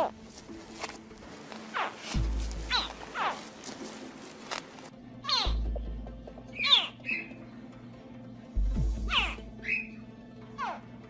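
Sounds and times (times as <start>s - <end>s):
background music with low bass: 0.0s - 11.0s
crocodile hatchlings chirping: 6.5s - 7.4s.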